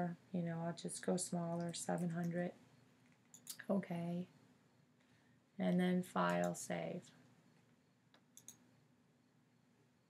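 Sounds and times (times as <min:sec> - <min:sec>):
faint computer mouse clicks: 0:08.1 - 0:08.7.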